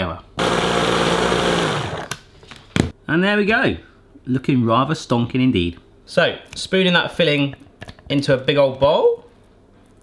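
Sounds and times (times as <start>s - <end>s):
blender motor whizzing: 0.4s - 2.2s.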